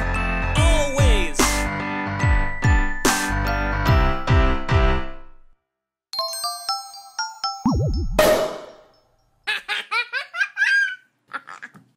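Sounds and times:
person giggling: 9.5 - 11.9.

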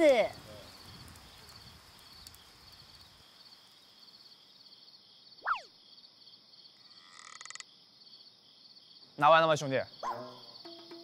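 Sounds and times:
frogs and insects trilling: 0.3 - 11.0
falling whistle-like glide: 5.4 - 5.7
rattling croak: 6.8 - 7.7.

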